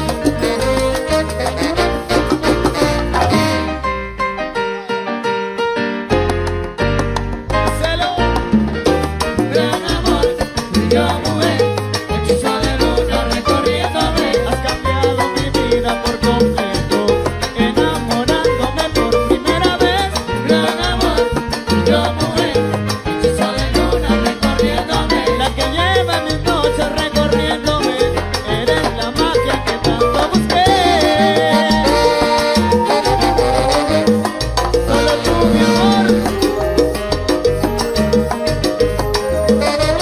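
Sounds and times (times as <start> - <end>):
salsa music: 0.0 - 40.0.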